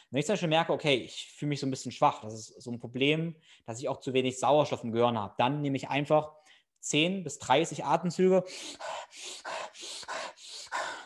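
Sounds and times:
man breathing rapidly: 0:08.4 - 0:11.0.

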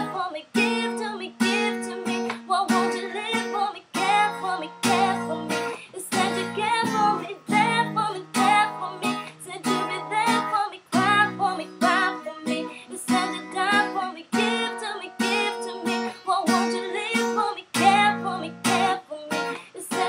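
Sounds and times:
acoustic guitar strumming: 0:00.0 - 0:20.0
woman singing: 0:00.0 - 0:20.0.

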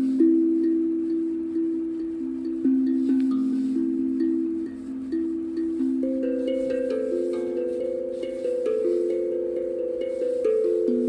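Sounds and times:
steel tongue drum notes ringing: 0:00.0 - 0:11.0.

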